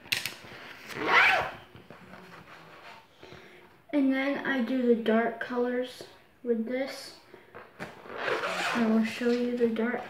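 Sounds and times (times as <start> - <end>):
zipper being pulled: 0.9 - 1.6, 7.8 - 9.4.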